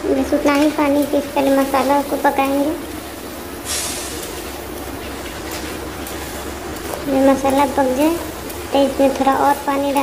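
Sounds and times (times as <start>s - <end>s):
loud hiss: 3.1s - 4.7s.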